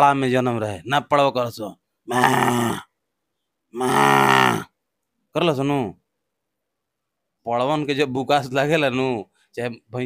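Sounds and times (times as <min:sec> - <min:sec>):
man imitating buffalo bellow: 0:02.1 - 0:02.9, 0:03.8 - 0:04.7.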